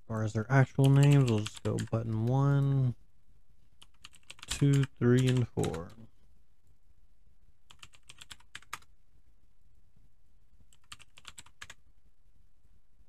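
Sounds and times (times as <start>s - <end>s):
typing on a computer keyboard: 0.8s - 2.2s, 3.8s - 6.0s, 7.7s - 8.9s, 10.7s - 11.8s.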